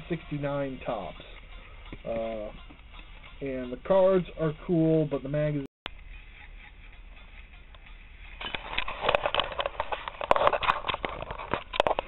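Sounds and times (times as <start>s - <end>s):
camera handling noise: 8.4s - 12.0s.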